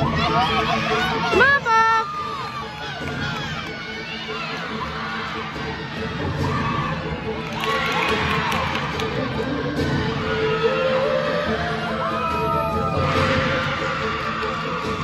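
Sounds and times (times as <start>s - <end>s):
group shouting and cheering: 0.0s - 15.0s.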